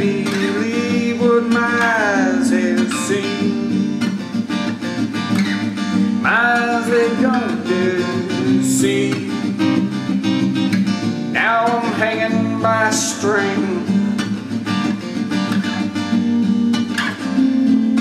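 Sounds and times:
person singing: 0:00.0 - 0:03.8, 0:06.2 - 0:09.8, 0:11.4 - 0:14.2
acoustic guitar strumming: 0:00.0 - 0:18.0.

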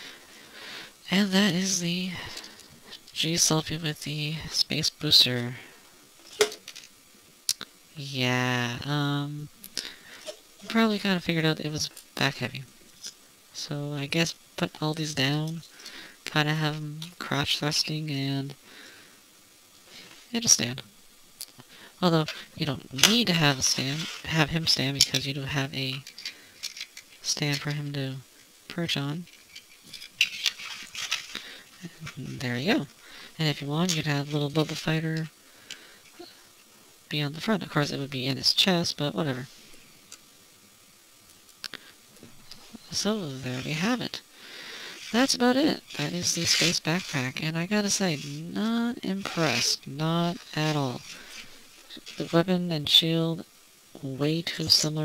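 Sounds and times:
plastic parts clicking: 0:25.9 - 0:27.6
plastic parts clicking and scraping: 0:25.9 - 0:27.8, 0:29.2 - 0:31.4.

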